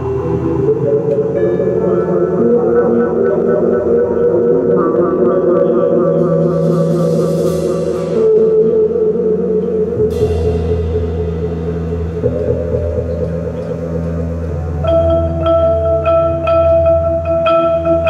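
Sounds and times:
sustained low chords: 0:00.0 - 0:18.0
cymbal roll: 0:06.3 - 0:14.3
cymbal crash: 0:10.0 - 0:12.8.

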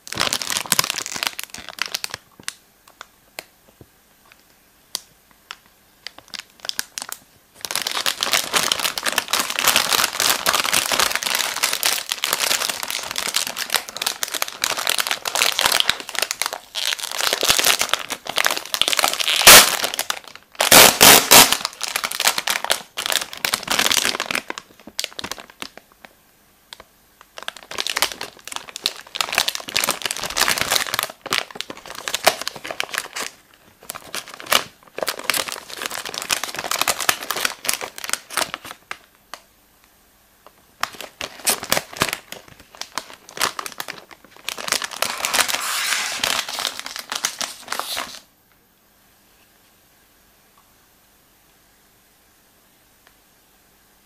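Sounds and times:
plastic wrapper crinkling: 0:00.0 - 0:03.5, 0:04.2 - 0:39.5, 0:40.4 - 0:48.3.

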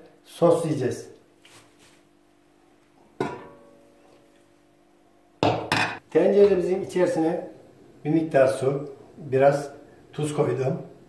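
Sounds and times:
metal pot and lid clinking: 0:03.2 - 0:03.8.

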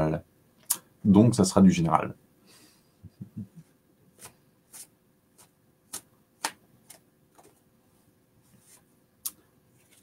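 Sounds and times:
cards being shuffled: 0:04.2 - 0:07.6, 0:09.8 - 0:10.0.

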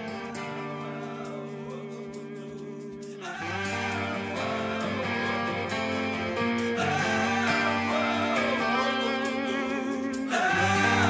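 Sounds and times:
electric guitar: 0:00.0 - 0:11.0
hard rock song: 0:03.2 - 0:11.0.

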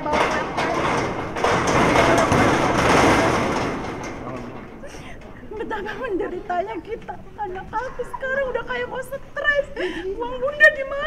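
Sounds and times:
dull thumps: 0:00.0 - 0:05.2
woman crying and sobbing: 0:04.8 - 0:11.0.

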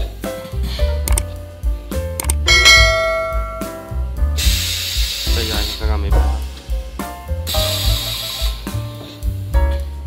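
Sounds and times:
background music with beat: 0:00.0 - 0:10.0
bell ding: 0:02.5 - 0:03.9
rushing hiss of air: 0:04.2 - 0:08.9.

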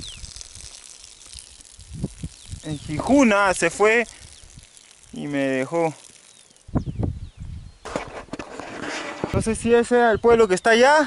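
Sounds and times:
wind rumbling on microphone: 0:00.0 - 0:00.8, 0:01.6 - 0:05.3, 0:06.6 - 0:10.6
faint hiss: 0:00.0 - 0:09.3.

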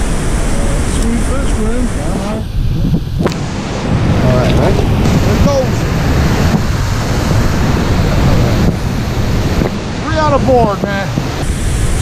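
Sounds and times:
creek water rushing over rapids: 0:00.0 - 0:12.0
wind buffeting microphone: 0:00.0 - 0:12.0.

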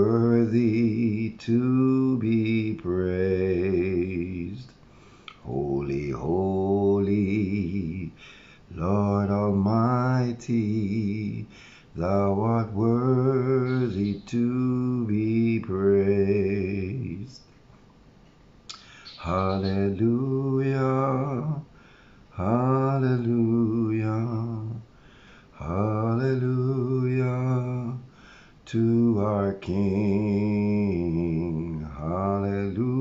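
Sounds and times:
man singing a hymn: 0:00.0 - 0:17.5, 0:18.8 - 0:33.0.

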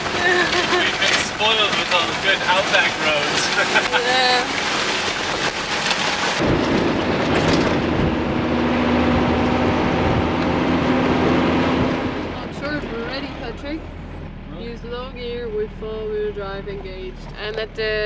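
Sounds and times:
jolting rattles: 0:00.0 - 0:07.8
truck diesel engine drone: 0:00.0 - 0:18.0
voices: 0:12.4 - 0:18.0.

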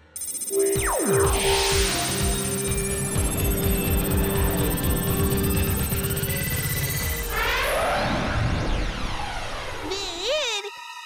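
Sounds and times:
shimmering high electronic ring: 0:00.0 - 0:07.5
steady electronic hum: 0:00.2 - 0:07.8
falling pitch sweeps: 0:00.2 - 0:09.0
low pulsing throb: 0:00.2 - 0:09.8.

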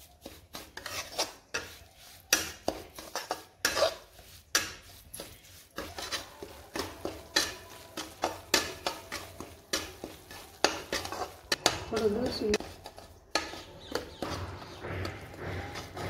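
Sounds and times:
metal spatula scraping a pan: 0:00.0 - 0:16.0.

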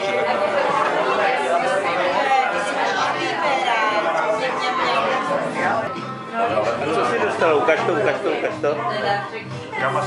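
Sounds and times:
overlapping chatter of voices: 0:00.0 - 0:10.0.

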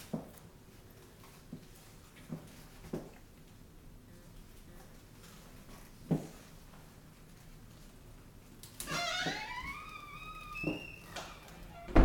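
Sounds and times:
door hinge squeaking: 0:08.9 - 0:12.0.

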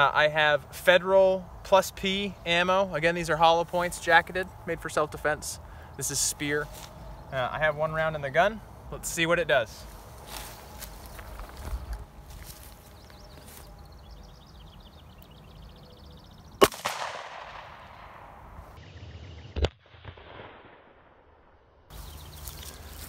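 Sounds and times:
revolver gunshot with echo: 0:16.6 - 0:18.5.

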